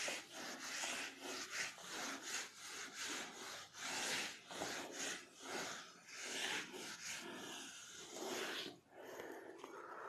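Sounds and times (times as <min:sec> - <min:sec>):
duster scrubbing on whiteboard: 0:00.0 - 0:09.4.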